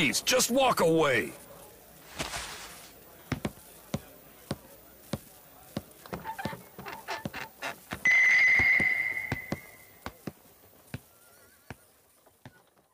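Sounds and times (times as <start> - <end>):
sandal footsteps on wooden floor: 3.3 - 8.0
loud high ringing tone: 8.1 - 9.9.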